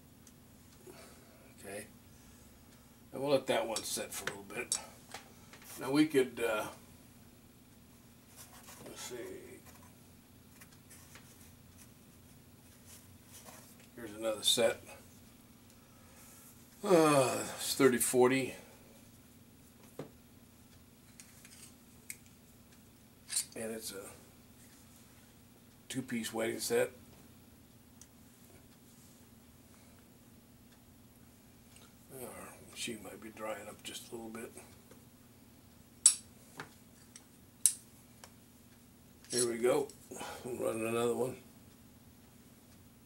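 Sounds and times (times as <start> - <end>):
low steady hum: 0.0 - 43.0.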